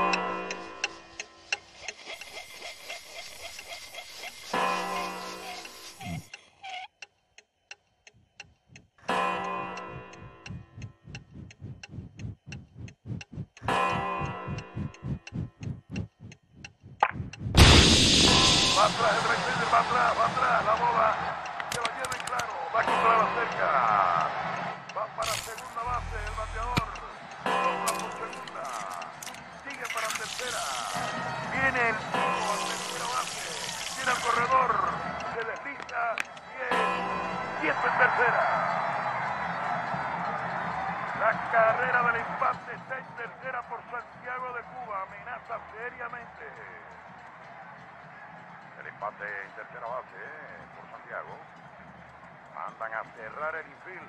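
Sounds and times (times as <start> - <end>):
mechanical ticking with low tone: 0.0 - 18.8, 25.2 - 30.5
film music: 7.7 - 24.1, 24.8 - 38.4
stadium crowd cheering: 17.8 - 54.0.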